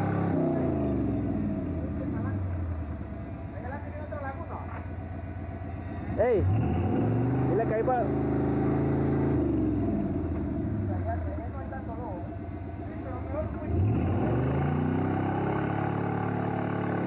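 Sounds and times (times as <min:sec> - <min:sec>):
engine revving in mud: 0:00.0 - 0:02.8, 0:05.8 - 0:12.0, 0:13.0 - 0:17.0.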